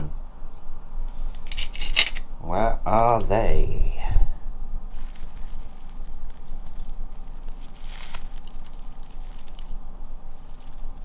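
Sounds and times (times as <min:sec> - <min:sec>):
dry leaves rustling and crackling: 0:04.9 - 0:11.0.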